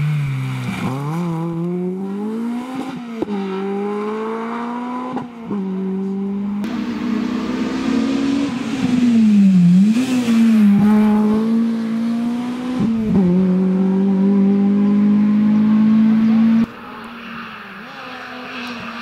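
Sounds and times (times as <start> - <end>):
rally car engine at full throttle: 0.0 - 19.0.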